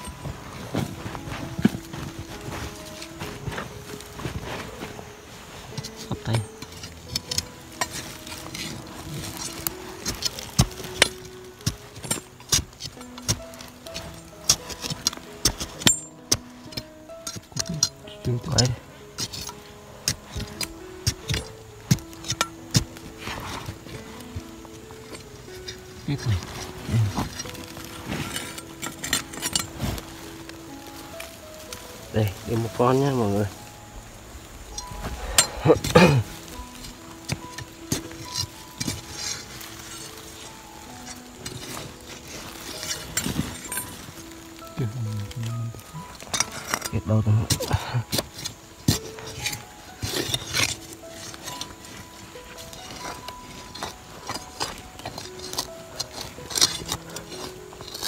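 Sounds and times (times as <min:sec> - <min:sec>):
music with held notes: 0:00.0 - 0:58.0
metal blade digging into earth: 0:05.7 - 0:31.3, 0:34.6 - 0:58.0.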